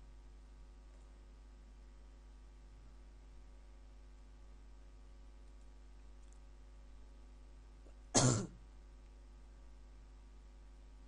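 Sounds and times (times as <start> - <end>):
person clearing throat: 8.1 - 8.6.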